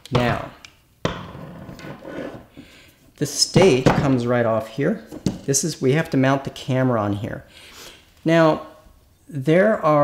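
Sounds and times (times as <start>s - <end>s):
metal rubbing scrape: 1.3s - 2.6s.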